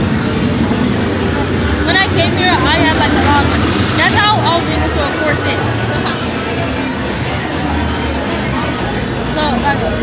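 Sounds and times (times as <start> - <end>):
traffic rumble: 0.0 - 10.0
voices: 0.0 - 10.0.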